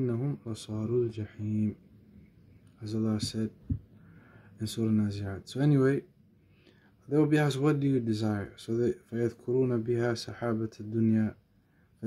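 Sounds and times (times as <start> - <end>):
man speaking: 0.0 - 1.8, 2.8 - 3.7, 4.6 - 6.1, 7.1 - 11.4.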